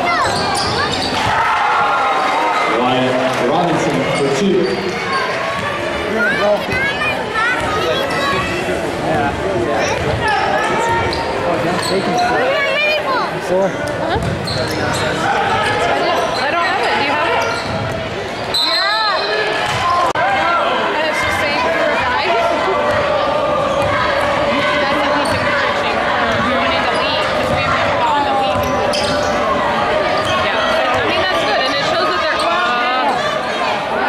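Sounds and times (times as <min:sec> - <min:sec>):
shoe squeals: 0:00.0 - 0:01.3, 0:10.2 - 0:12.4, 0:14.4 - 0:17.8, 0:18.4 - 0:19.5, 0:28.0 - 0:29.5
crowd chatter and shouts: 0:00.0 - 0:34.0.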